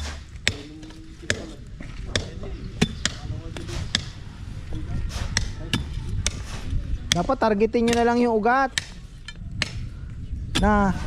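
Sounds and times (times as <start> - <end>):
digging bar striking stony soil: 0.0 - 4.2, 5.1 - 9.9.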